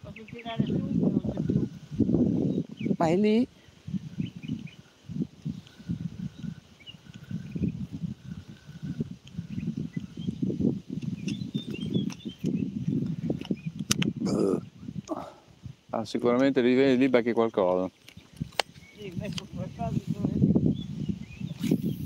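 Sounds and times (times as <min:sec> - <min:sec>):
wind buffeting microphone: 0:00.0 - 0:22.0
faint bird chirps: 0:20.7 - 0:22.0.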